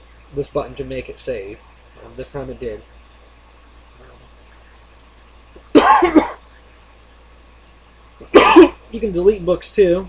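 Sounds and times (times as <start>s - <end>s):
person coughing: 5.8s - 6.4s, 8.2s - 8.8s.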